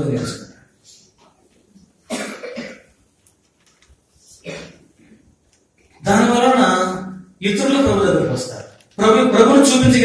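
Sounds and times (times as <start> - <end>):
man coughing: 2.1 - 2.9, 4.4 - 4.8.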